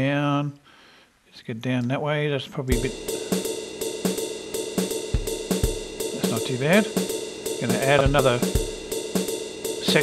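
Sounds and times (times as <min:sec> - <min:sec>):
swing drum kit rhythm: 0:02.7 - 0:10.0.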